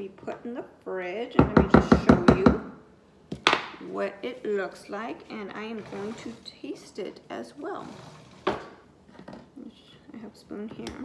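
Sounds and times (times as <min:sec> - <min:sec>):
woman speaking softly: 0:09.6 - 0:11.0.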